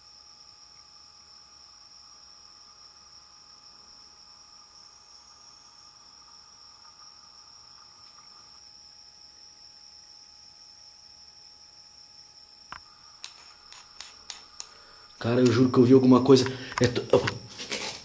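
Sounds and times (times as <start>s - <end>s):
night insects chirring: 0.0s - 18.0s.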